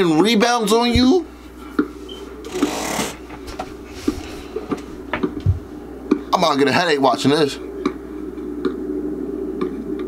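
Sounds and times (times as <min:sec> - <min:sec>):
steady low hum: 0:00.0 - 0:10.0.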